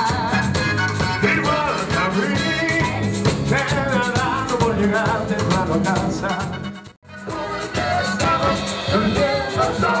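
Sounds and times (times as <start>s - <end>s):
drums with steady beat: 0.0s - 10.0s.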